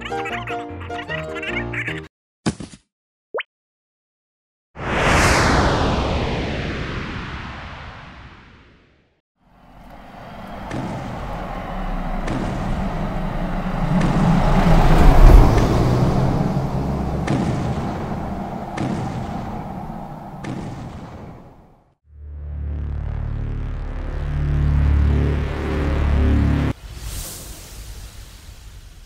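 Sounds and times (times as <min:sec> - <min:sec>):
deep rumble: 0:04.8 - 0:08.2, 0:09.5 - 0:21.8
blast sweeping down in pitch: 0:04.8 - 0:09.0, 0:10.1 - 0:21.6
heavy monster footstep thuds: 0:10.6 - 0:19.5.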